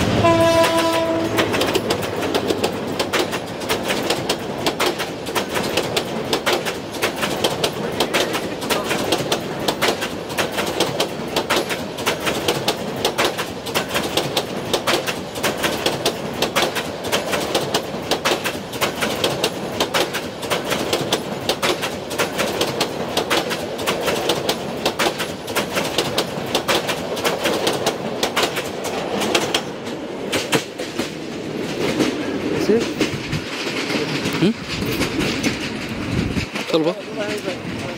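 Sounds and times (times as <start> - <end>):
train rolling rumble: 0.0 - 37.9
train wheels clattering: 0.0 - 37.9.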